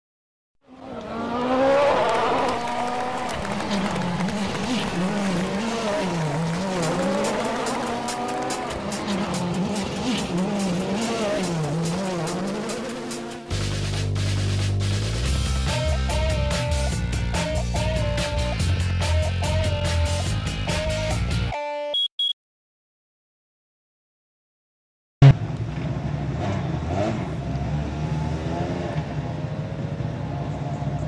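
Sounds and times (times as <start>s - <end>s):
rally car engine revving: 0.7s - 20.2s, 25.2s - 30.1s
engine crackles: 0.8s - 15.5s
music: 6.2s - 22.0s.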